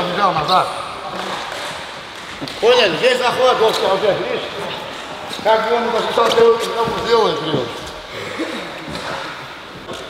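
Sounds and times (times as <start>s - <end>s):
large room noise: 0.0s - 10.0s
man speaking: 2.6s - 7.8s.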